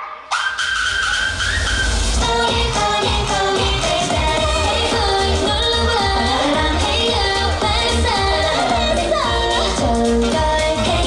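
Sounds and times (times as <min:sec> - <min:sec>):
pop dance track: 0:00.0 - 0:11.0
female singing: 0:02.2 - 0:11.0
heavy bass beat: 0:02.2 - 0:11.0.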